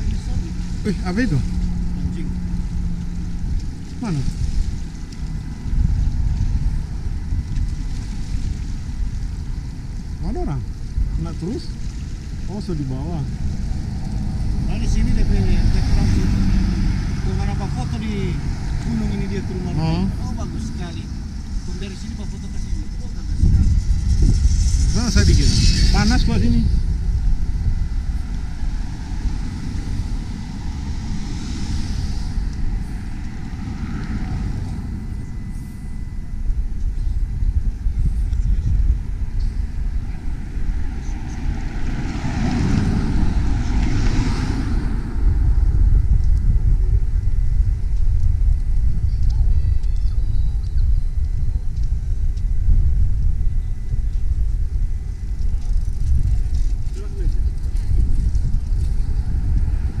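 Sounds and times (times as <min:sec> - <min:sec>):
cars passing on a street: 0:00.0 - 0:49.8, 0:51.1 - 1:00.0.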